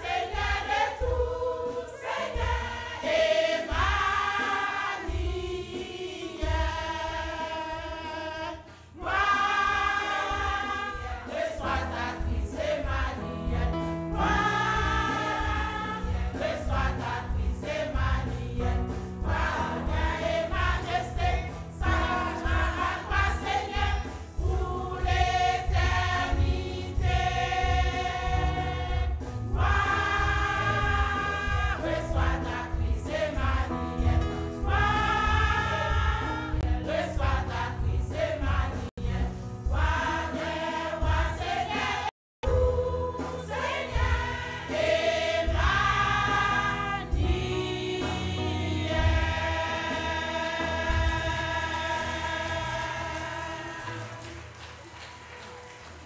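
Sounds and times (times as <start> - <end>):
women's choir singing a hymn: 0.0 - 54.6.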